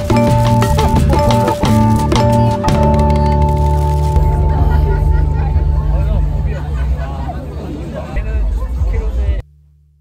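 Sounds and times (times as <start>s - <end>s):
crowd babble: 0.0s - 9.4s
low bass drone: 0.0s - 10.0s.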